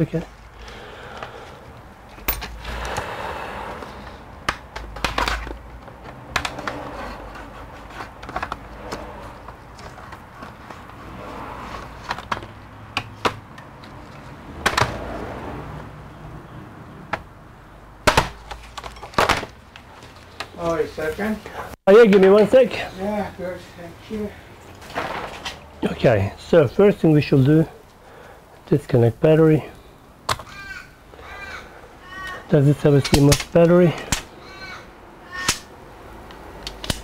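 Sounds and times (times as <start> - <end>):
plastic clips snapping: 36.6 - 37.0.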